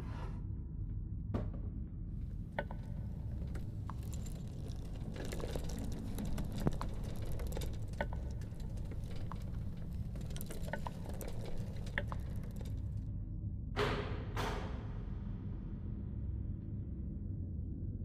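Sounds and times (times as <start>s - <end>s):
faint clicks and rattles: 2.2s - 13.0s.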